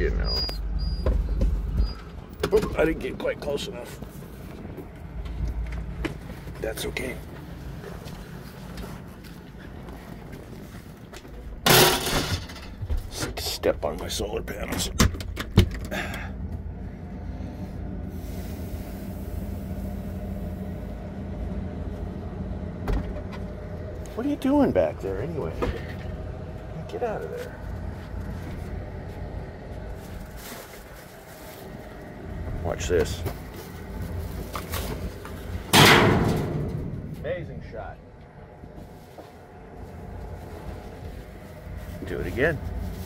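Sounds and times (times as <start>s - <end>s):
vehicle engine idling: 0.0s - 11.7s, 12.4s - 43.0s
low steady rumble: 0.0s - 43.0s
rustle of movement: 25.8s - 35.7s, 38.6s - 43.0s.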